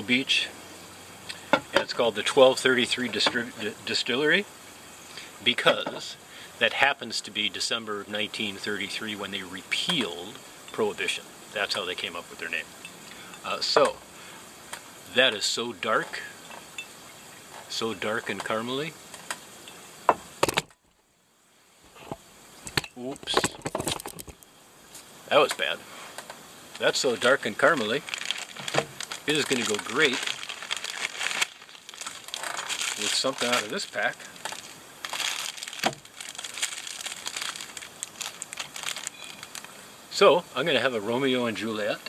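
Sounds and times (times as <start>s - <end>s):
plastic wrapper crinkling: 26.7s - 39.8s.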